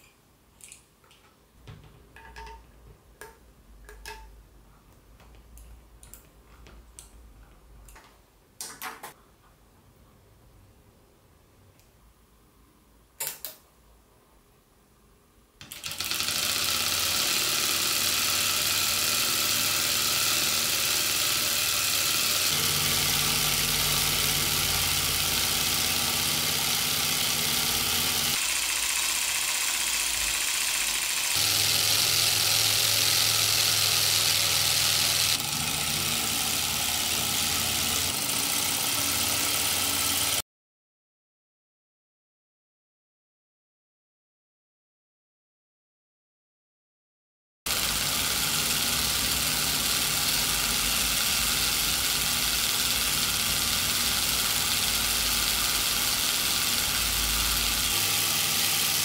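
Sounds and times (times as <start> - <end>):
solenoid engine running: 15.7 - 40.4, 47.7 - 59.0.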